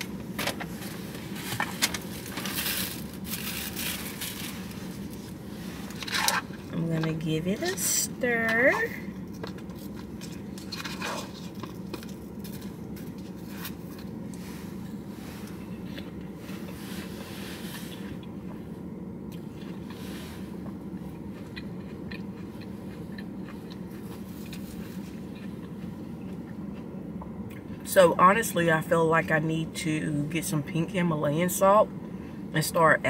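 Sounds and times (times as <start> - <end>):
car interior hum: 0.0 - 33.0
chewing: 20.6 - 27.8.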